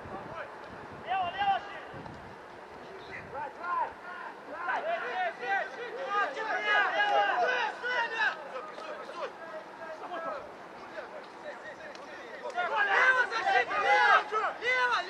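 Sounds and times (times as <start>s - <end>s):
voices shouting: 0.2s - 2.0s, 2.7s - 15.0s.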